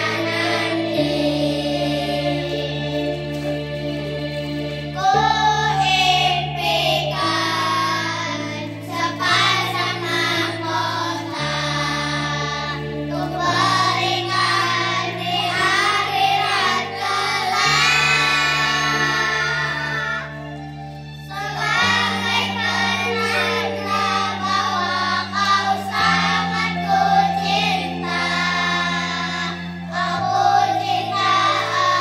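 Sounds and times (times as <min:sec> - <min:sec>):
children singing in unison: 0:00.0 - 0:20.6, 0:21.2 - 0:32.0
instrumental accompaniment: 0:00.0 - 0:32.0.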